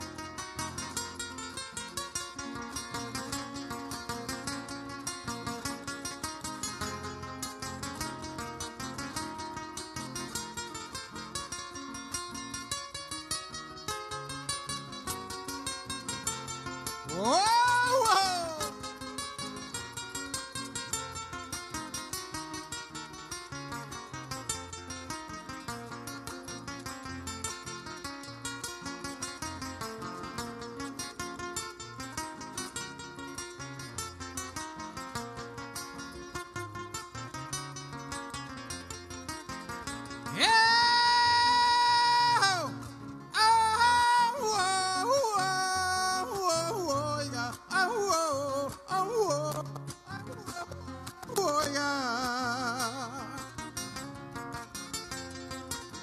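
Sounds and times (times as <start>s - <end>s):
acoustic guitar strumming: 0.0s - 56.0s
man singing: 17.1s - 19.1s, 40.3s - 53.7s.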